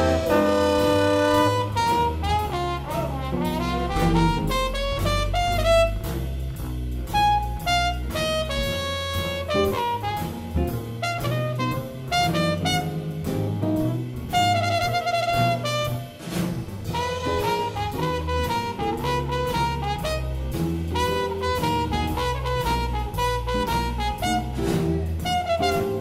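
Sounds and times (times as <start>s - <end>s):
saxophones and brass playing: 0.0s - 6.3s, 7.1s - 13.2s, 14.3s - 16.3s, 16.9s - 26.0s
drum kit: 0.0s - 26.0s
walking bass: 0.0s - 26.0s.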